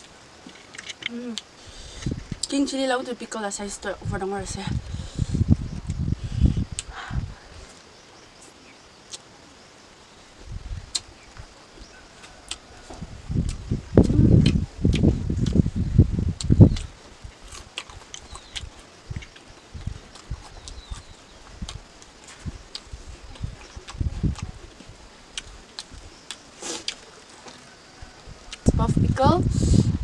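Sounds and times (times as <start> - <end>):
open-mouth chewing: 11.9 - 15.6, 16.4 - 27.8.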